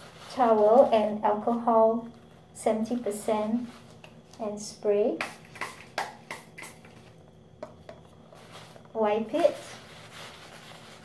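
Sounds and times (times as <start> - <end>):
spray bottle hissing: 5.2 - 7.0.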